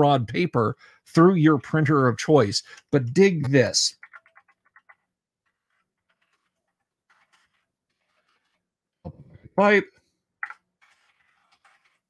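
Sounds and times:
faint rapid clicks: 0:03.9 - 0:05.1.

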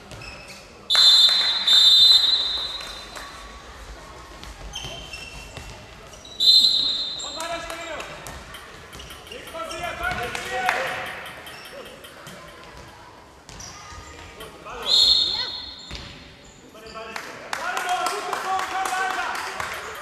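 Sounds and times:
referee's whistle blasts: 0:00.9 - 0:03.1, 0:06.4 - 0:07.6, 0:14.8 - 0:15.9
ball bouncing on hall floor: 0:04.1 - 0:06.2, 0:07.1 - 0:14.7, 0:15.4 - 0:16.4.

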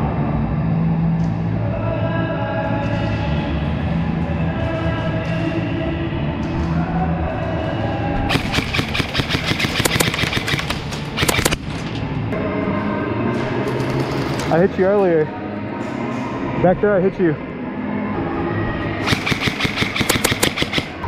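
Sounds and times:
background music: 0:00.0 - 0:21.0
airsoft rifle rapid shots: 0:08.3 - 0:11.7, 0:19.0 - 0:21.0.

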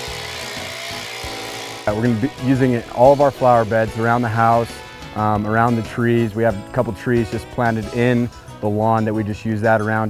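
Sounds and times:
earth auger boring into soil: 0:00.0 - 0:06.5
background music: 0:00.0 - 0:10.0.

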